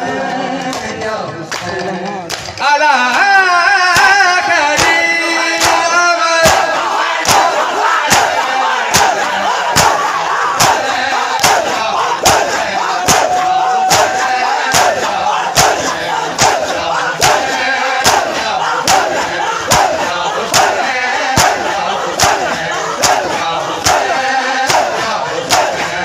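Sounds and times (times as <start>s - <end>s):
massed voices of mourners: 0.0s - 26.0s
men striking chests in unison: 3.9s - 26.0s.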